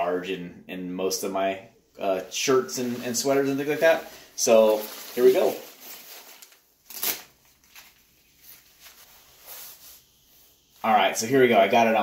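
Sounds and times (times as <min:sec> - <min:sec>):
nylon jacket rustling: 0:02.0 - 0:10.9.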